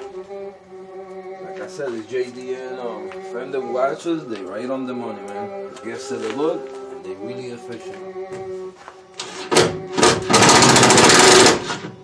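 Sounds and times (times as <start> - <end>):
impact tool hammering: 9.5 - 11.8.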